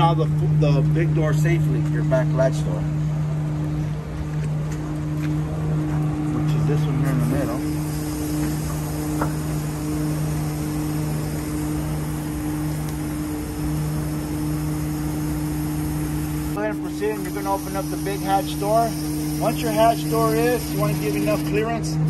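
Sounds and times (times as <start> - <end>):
truck engine humming: 0.0 - 22.0
hydraulic hiss: 7.1 - 21.8.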